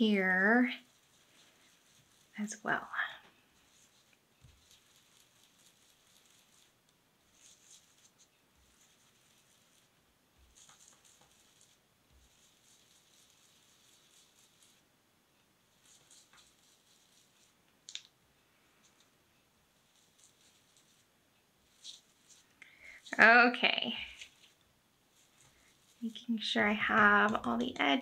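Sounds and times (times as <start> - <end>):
foam tool scrubbing paper: 0.0 - 14.9, 15.6 - 17.6, 19.8 - 28.0.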